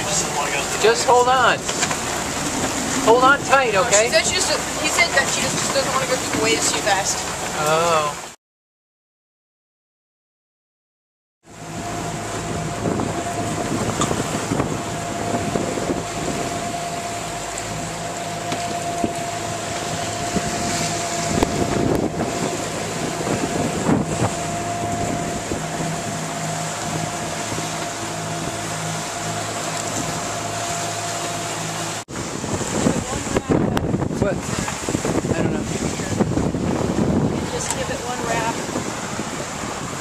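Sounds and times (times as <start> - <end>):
wind buffeting microphone: 0.0 - 7.6, 11.5 - 40.0
water rushing past hull: 0.0 - 8.4, 11.4 - 40.0.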